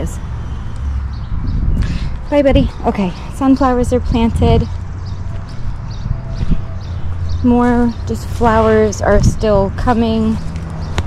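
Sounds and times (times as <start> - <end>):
footsteps: 4.5 - 11.0.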